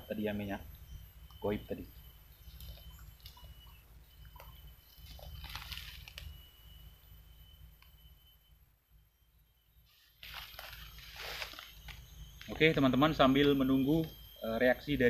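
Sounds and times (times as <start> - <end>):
rustling of leaf litter: 4.9 - 6.4, 9.9 - 12.6.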